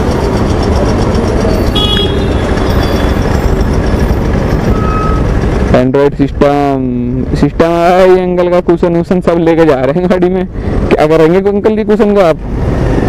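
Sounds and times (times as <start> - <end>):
motorcycle engine: 0.0 - 8.4
short faint beeps: 4.7 - 5.2.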